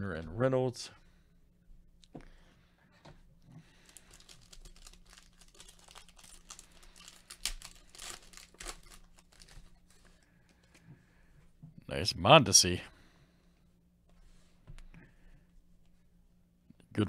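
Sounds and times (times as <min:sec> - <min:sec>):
foil wrapper tearing and crinkling: 0:03.8 - 0:10.0.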